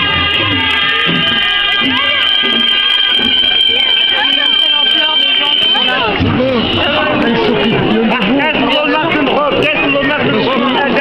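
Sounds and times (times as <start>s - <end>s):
shrill reed shawm note: 0.0s - 6.9s
crowd voices calling: 0.0s - 11.0s.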